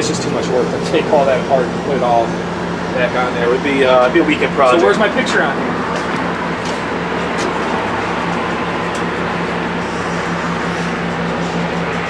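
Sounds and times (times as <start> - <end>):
machinery humming and hissing: 0.0 - 12.0.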